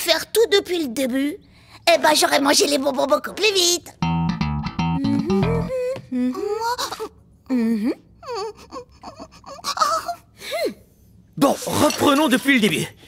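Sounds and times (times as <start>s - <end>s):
bass and guitar music sting: 4.0s - 5.8s.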